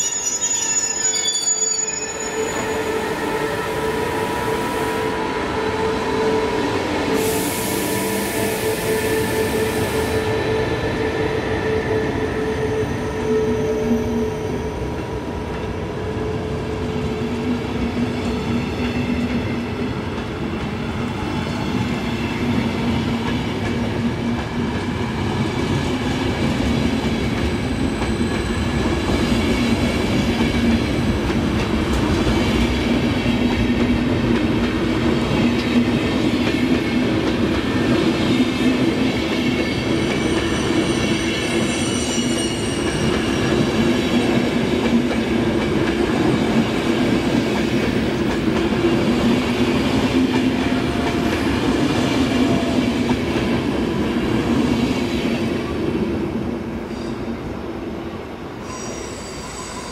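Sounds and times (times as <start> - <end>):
train wheels rumbling on rails: 2.6 - 57.8.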